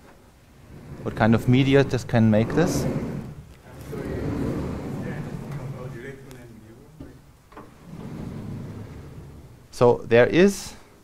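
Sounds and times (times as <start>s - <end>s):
sliding blackboard rolling rumble: 0.5s - 9.7s.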